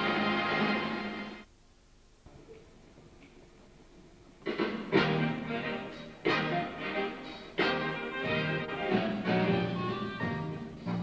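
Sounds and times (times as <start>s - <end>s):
jazz big band holding chord: 4.5s - 11.0s.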